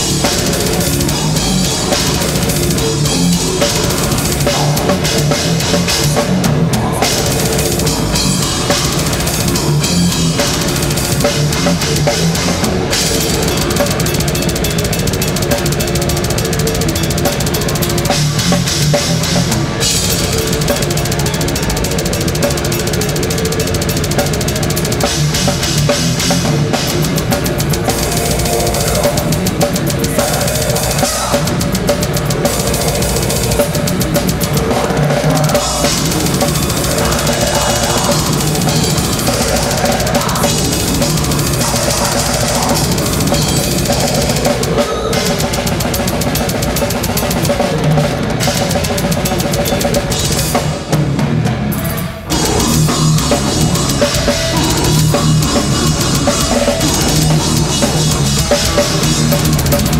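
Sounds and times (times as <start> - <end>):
fast cymbal strokes: 0.0 - 50.9, 51.7 - 59.9
band sustained low parts: 0.0 - 59.9
distorted electric guitars: 0.0 - 59.9
drums: 0.0 - 59.9.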